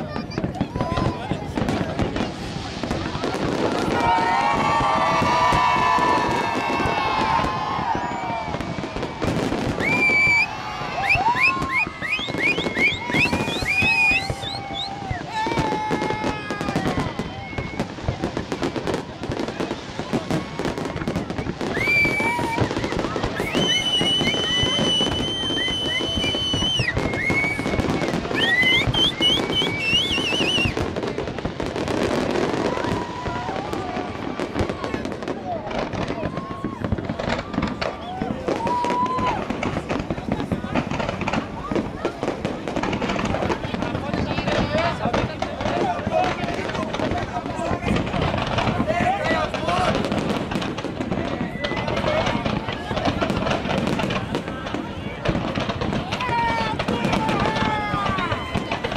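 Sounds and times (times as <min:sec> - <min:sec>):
crowd voices: 0:00.0 - 0:58.9
fireworks crackling and banging: 0:00.0 - 0:58.9
high whistling tones: 0:09.8 - 0:15.3, 0:23.3 - 0:30.8.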